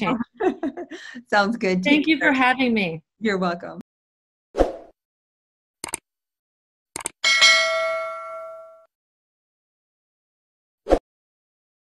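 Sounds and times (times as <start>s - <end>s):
quick clicks: 5.8s - 6.0s, 7.0s - 7.2s
bright bell ding: 7.2s - 8.9s.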